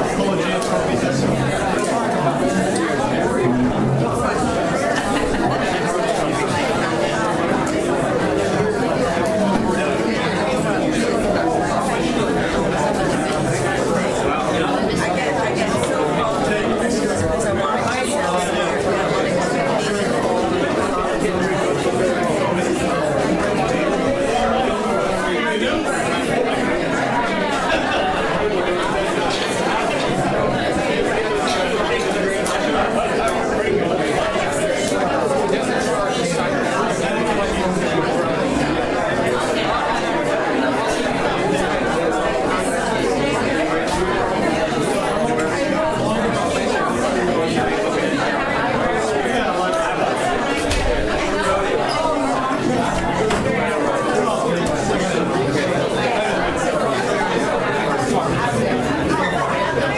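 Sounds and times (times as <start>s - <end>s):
crowd conversation: 0.0s - 59.9s.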